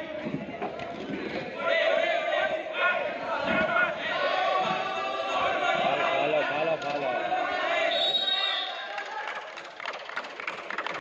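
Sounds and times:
spectators shouting and cheering: 0.0s - 10.0s
sharp irregular claps: 8.9s - 11.0s.

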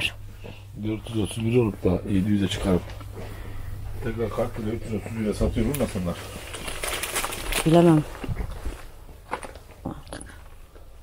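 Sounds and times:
plastic packs clicking and crinkling: 5.5s - 9.8s.

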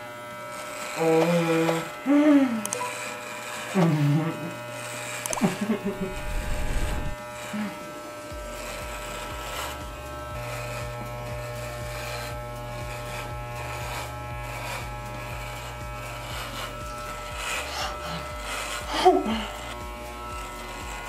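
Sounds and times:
electric hair clippers buzzing: 0.0s - 21.0s.

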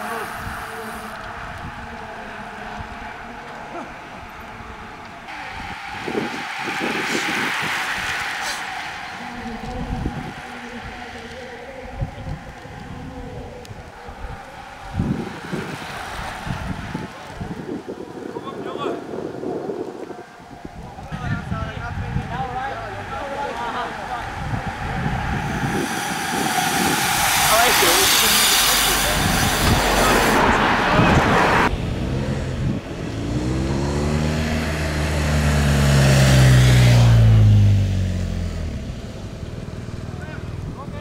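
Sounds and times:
vehicle passing: 0.0s - 18.4s, 20.2s - 41.0s
indistinct voices: 0.0s - 35.4s
wind on microphone: 0.0s - 37.8s.

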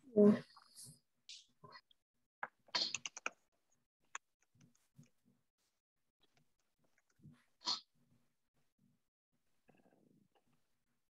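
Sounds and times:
computer keyboard typing: 2.8s - 3.4s.

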